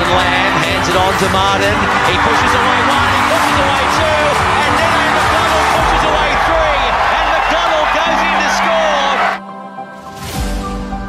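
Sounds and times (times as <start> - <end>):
commentator talking: 0.0 - 9.4
stadium crowd cheering: 0.0 - 9.4
background music: 0.0 - 11.0.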